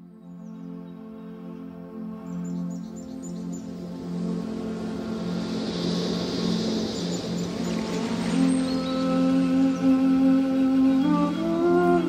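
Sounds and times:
ambient music with drone: 0:00.0 - 0:12.0.

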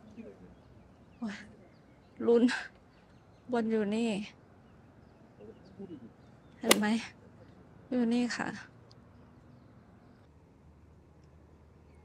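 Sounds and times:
faint bird chirps: 0:00.0 - 0:07.6.

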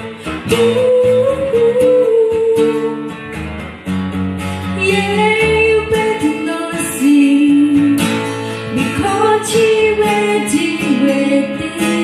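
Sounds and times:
woman singing: 0:00.0 - 0:03.2, 0:04.7 - 0:12.0
strummed acoustic guitar: 0:00.0 - 0:12.0.

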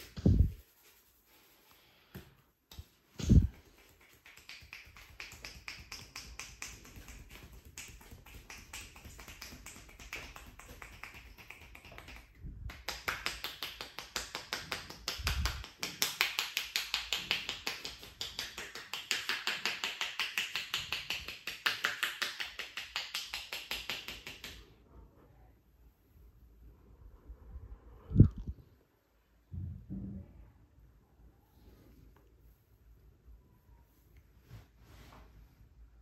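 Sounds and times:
hands tapping rapidly on scalp: 0:02.7 - 0:24.6.

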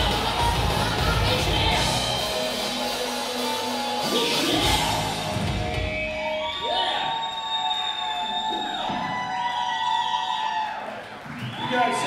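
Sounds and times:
rock band sustained notes: 0:00.0 - 0:06.4.

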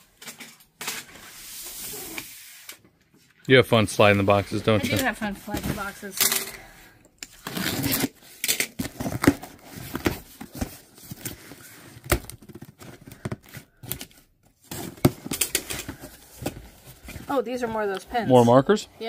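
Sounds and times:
tape and cardboard rustling: 0:00.0 - 0:03.4, 0:04.1 - 0:06.2, 0:07.3 - 0:18.2.

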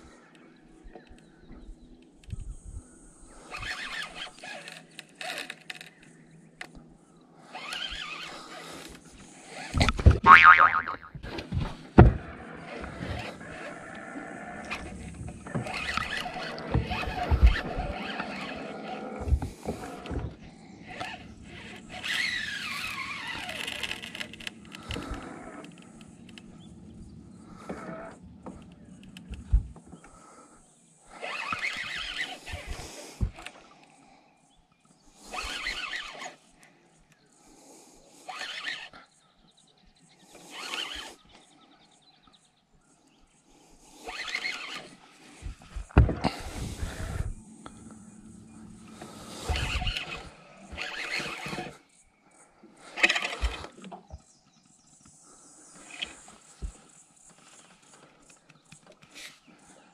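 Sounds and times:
fishing reel drag squealing: 0:03.4 - 0:06.0, 0:07.4 - 0:08.8, 0:14.5 - 0:20.0, 0:20.8 - 0:25.7, 0:31.1 - 0:33.5, 0:35.2 - 0:36.5, 0:37.7 - 0:39.0, 0:40.3 - 0:41.3, 0:43.9 - 0:45.1, 0:48.8 - 0:52.0, 0:52.8 - 0:53.8.

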